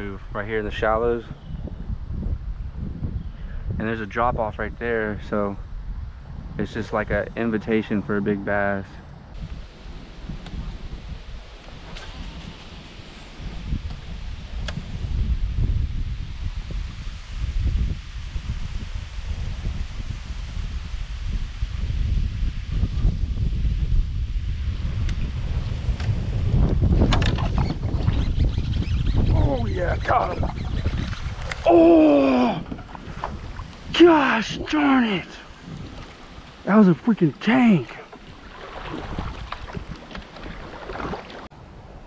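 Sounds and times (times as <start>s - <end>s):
wind buffeting microphone: 0.0s - 42.0s.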